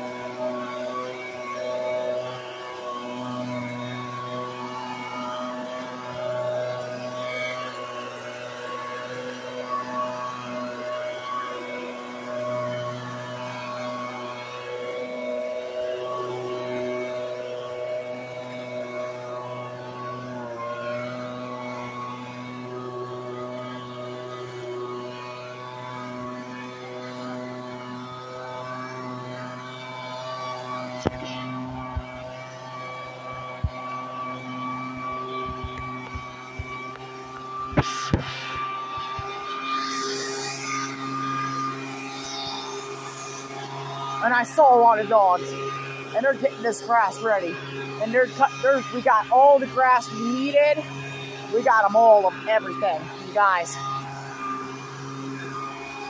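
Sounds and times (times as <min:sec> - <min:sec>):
gas leaf blower running: 0:00.0 - 0:56.0.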